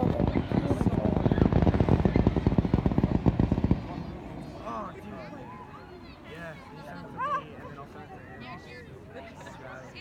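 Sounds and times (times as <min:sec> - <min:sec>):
fireworks popping and crackling: 0:00.0 - 0:04.4.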